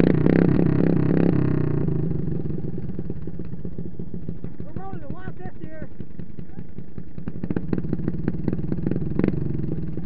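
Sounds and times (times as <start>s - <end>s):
lawn mower engine idling: 0.0s - 10.0s.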